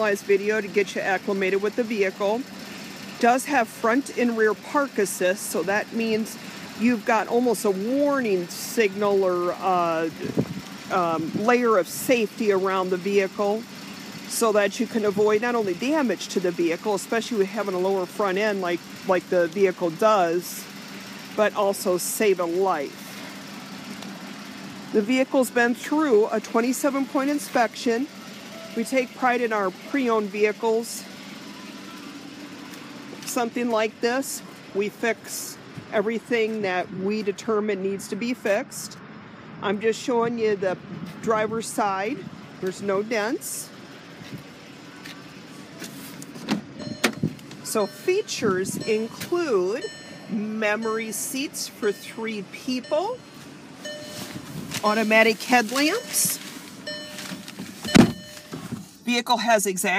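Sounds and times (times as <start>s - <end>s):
car door handle and latch clunk: 46.4s - 47.6s, 57.3s - 58.8s
short thump inside car: 57.8s - 58.8s.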